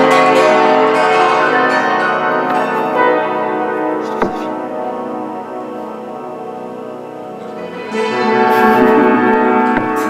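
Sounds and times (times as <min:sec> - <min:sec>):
piano notes: 0:00.0 - 0:10.0
santur hammered strings: 0:00.0 - 0:10.0.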